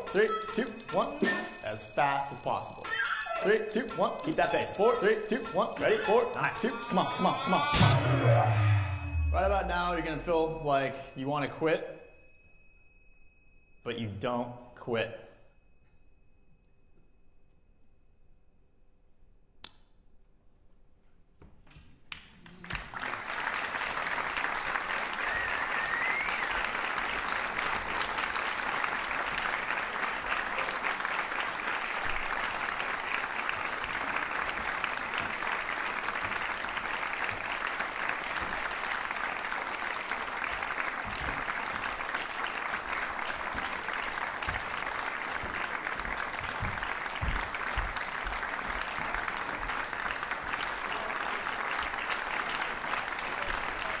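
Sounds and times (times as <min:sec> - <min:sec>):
audience applauding: 0:00.0 - 0:09.0, 0:22.1 - 0:54.0
rising whistle: 0:25.1 - 0:26.8.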